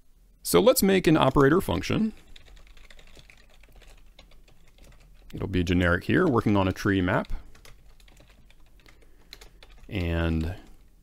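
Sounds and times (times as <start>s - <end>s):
computer keyboard typing: 1.2s - 5.5s, 6.1s - 10.9s.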